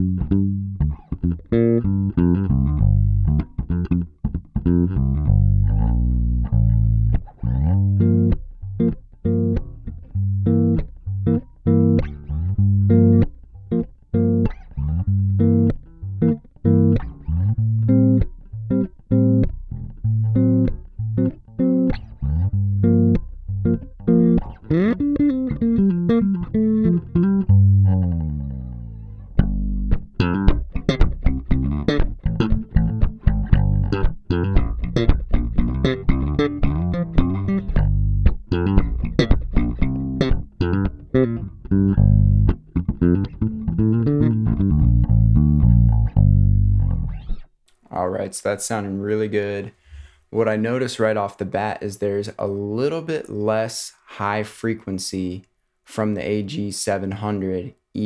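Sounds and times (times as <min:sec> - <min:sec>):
electric bass playing: 0:00.0 - 0:47.5.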